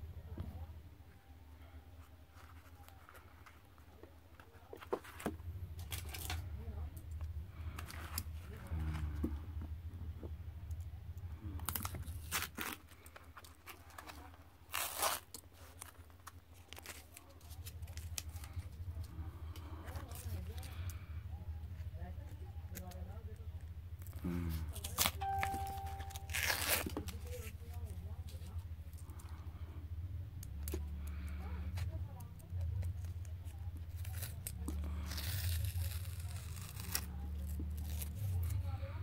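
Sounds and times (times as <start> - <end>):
masking tape ripping: 11.6 - 14.1, 14.7 - 16.0, 24.1 - 25.5, 26.1 - 27.5, 33.8 - 38.6.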